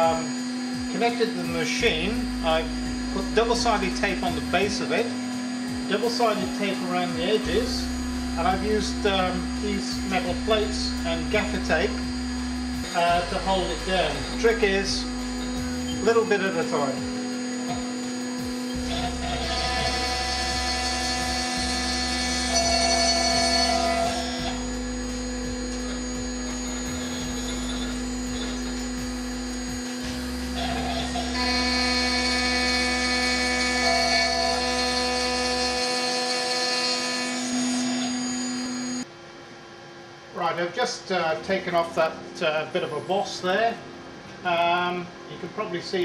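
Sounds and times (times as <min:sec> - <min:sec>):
router spindle whining: 0:00.0 - 0:39.0.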